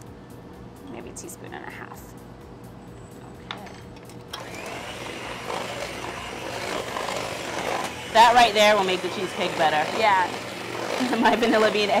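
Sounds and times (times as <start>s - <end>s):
electric hand mixer running: 4.3s - 12.0s.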